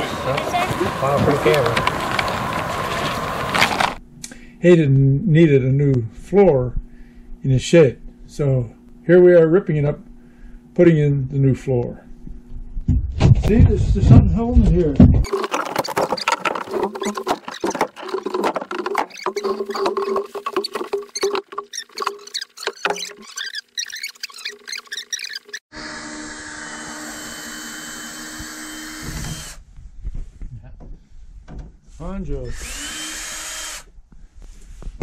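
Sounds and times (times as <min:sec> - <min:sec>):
wood creaking: 0:00.2 - 0:04.0, 0:15.1 - 0:25.6
knocks and clatters: 0:15.0 - 0:25.6
nails squeaking: 0:15.2 - 0:25.6
cordless drill running: 0:25.7 - 0:29.6, 0:32.5 - 0:33.9.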